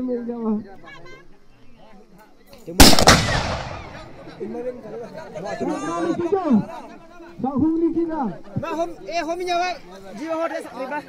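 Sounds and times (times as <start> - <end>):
loud gunshot: 2.8 - 4.4.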